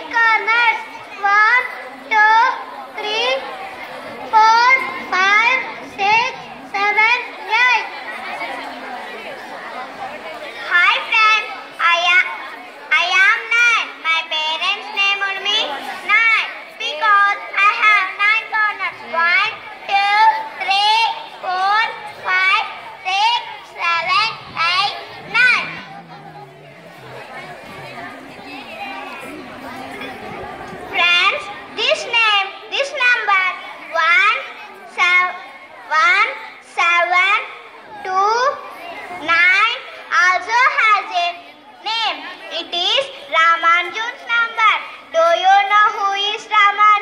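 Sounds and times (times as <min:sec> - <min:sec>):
child speaking into a microphone: 0:00.0 - 0:09.1, 0:10.4 - 0:47.0
background chatter: 0:00.0 - 0:47.0
lower voice: 0:23.7 - 0:30.9.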